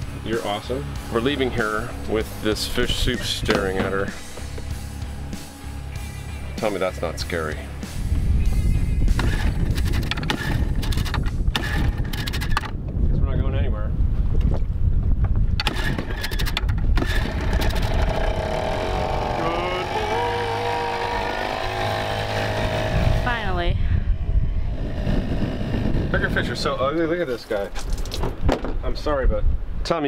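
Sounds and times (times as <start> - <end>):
outboard motor running: 0.0 - 12.7, 15.6 - 26.6
wind rumble on microphone: 6.8 - 30.0.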